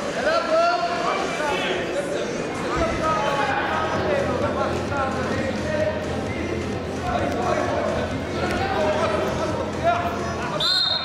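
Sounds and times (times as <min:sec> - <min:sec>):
referee's whistle blast: 0:10.6 - 0:11.0.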